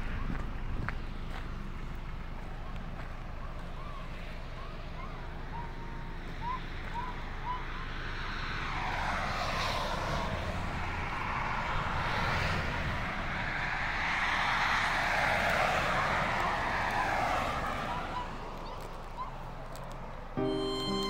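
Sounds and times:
highway traffic passing: 0.0s - 21.0s.

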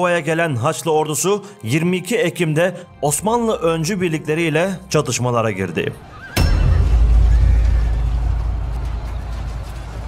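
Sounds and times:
background music: 0.0s - 10.0s
horse whinnying: 6.0s - 8.0s.

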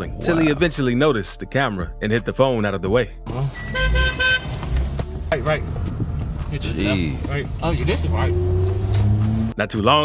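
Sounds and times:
car engine low rumble: 3.3s - 10.0s
car horn short toots: 3.6s - 4.6s.

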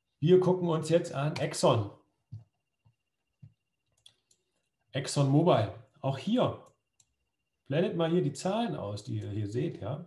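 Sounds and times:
computer mouse clicks: 3.4s - 4.7s, 6.6s - 7.2s.

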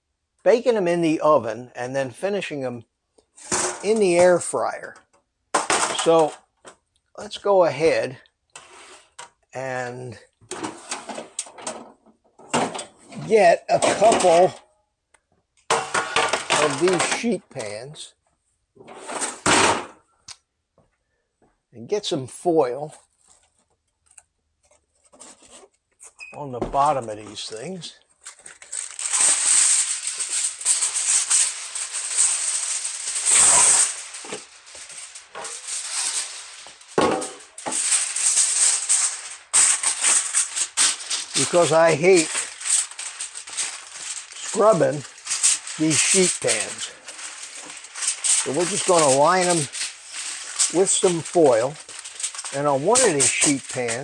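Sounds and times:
metal sheet pans scraping: 3.4s - 4.5s, 5.6s - 6.4s, 8.6s - 9.3s, 10.5s - 14.6s, 15.7s - 17.7s, 18.8s - 20.0s, 28.9s - 54.0s
aluminum foil crinkling: 5.6s - 6.9s, 10.2s - 14.6s, 15.7s - 17.8s, 26.8s - 54.0s.

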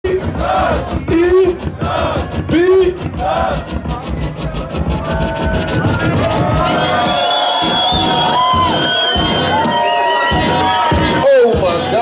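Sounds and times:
hip-hop beat over sound system: 0.0s - 12.0s
crowd cheering: 3.2s - 12.0s.

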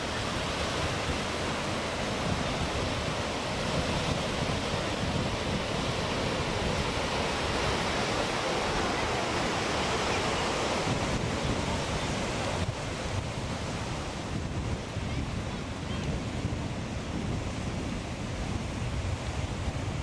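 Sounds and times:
ocean surf washing onto beach: 0.0s - 20.0s
wind buffeting microphone: 0.0s - 20.0s.

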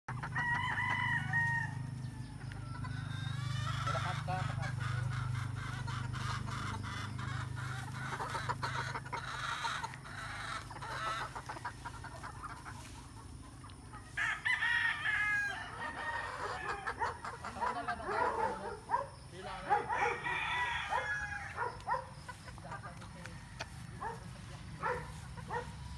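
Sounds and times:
rooster crowing: 0.1s - 4.8s, 14.1s - 22.1s, 23.2s - 25.7s
chickens clucking: 0.1s - 25.9s.

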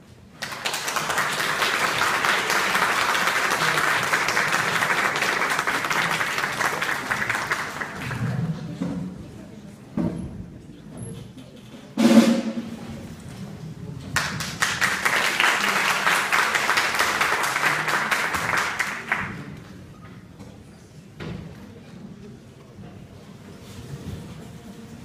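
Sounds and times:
audience applause: 0.4s - 8.7s, 14.2s - 19.6s.

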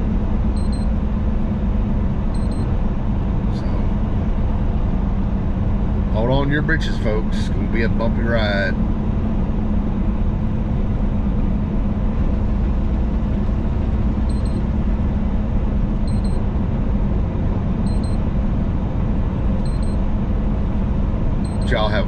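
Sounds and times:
truck engine and road noise: 0.0s - 22.0s
faint high beep: 0.6s - 0.9s, 2.4s - 2.7s, 14.3s - 14.6s, 16.1s - 16.4s, 17.9s - 18.2s, 19.6s - 20.0s, 21.4s - 21.8s.

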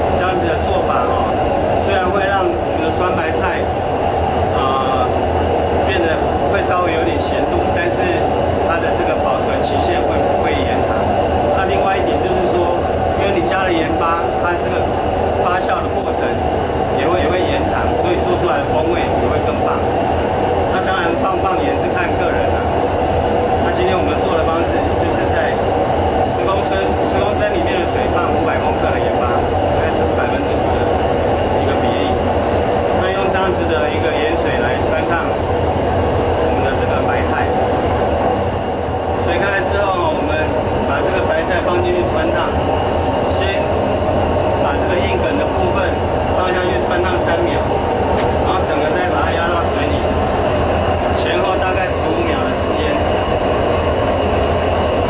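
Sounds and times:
man talking: 0.0s - 3.8s, 4.5s - 20.0s, 20.6s - 22.8s, 23.6s - 32.3s, 32.9s - 35.5s, 36.4s - 37.7s, 38.8s - 43.9s, 44.6s - 50.3s, 51.0s - 53.3s
stove burner rumbling: 0.0s - 55.0s.

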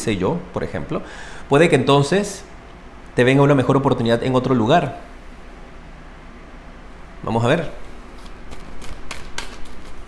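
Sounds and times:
cards being shuffled: 7.8s - 10.0s.

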